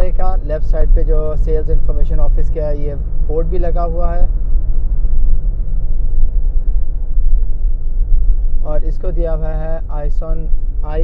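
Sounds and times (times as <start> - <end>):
car cabin engine and tyre rumble: 0.0 - 11.0.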